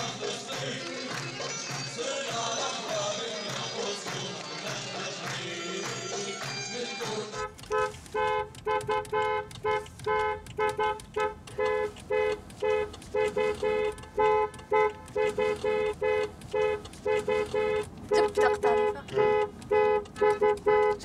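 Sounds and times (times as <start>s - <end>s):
car horns honking: 5.7s - 21.0s.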